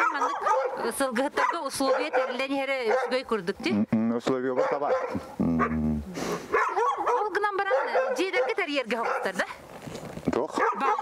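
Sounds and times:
woman talking: 0.0 - 3.8, 7.0 - 9.6
man talking: 3.9 - 6.2, 10.3 - 10.7.

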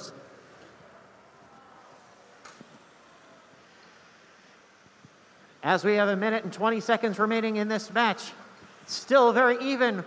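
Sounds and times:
busy gymnasium background noise: 0.0 - 10.0.

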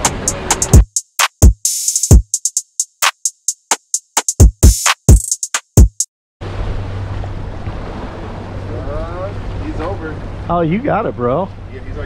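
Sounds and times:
electronic music beat: 0.0 - 6.1.

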